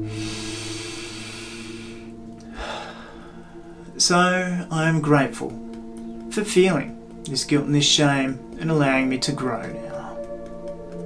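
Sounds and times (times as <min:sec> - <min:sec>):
long audible breath: 0:00.0 - 0:04.0
quiet background music: 0:00.0 - 0:11.0.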